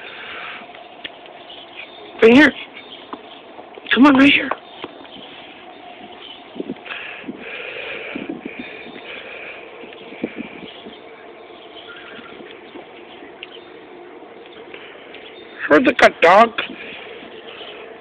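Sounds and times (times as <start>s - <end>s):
faint high-pitched chirping: 8.6s - 15.8s.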